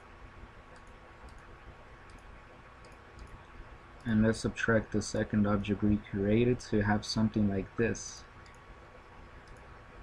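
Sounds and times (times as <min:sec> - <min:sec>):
low steady hum: 0:00.0 - 0:10.0
computer mouse clicks: 0:00.7 - 0:03.4, 0:08.4 - 0:09.8.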